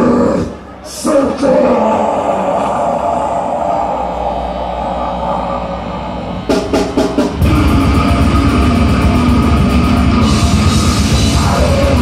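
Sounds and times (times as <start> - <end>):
grindcore band playing: 3.9 - 12.0
drum strikes: 6.5 - 12.0.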